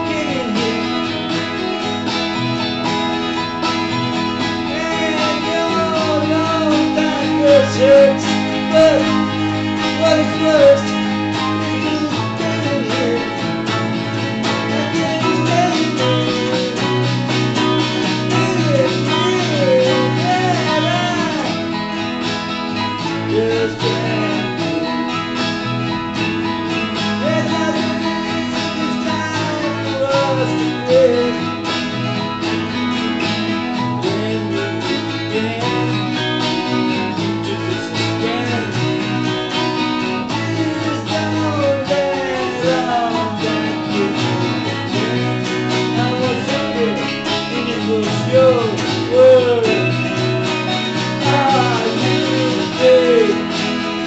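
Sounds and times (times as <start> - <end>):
electric guitar playing: 0.0 - 54.0.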